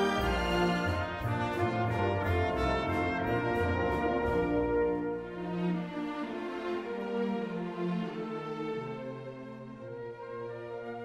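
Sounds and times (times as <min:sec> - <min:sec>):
brass section playing: 0:00.0 - 0:05.8.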